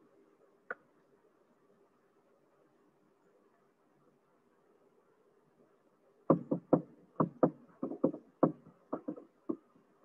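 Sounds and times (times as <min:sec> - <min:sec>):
sharp knocks: 0:06.3 - 0:09.6.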